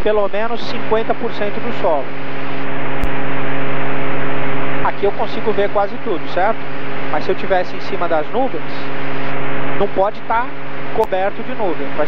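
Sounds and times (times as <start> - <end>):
airplane engine cabin drone: 0.0 - 12.0.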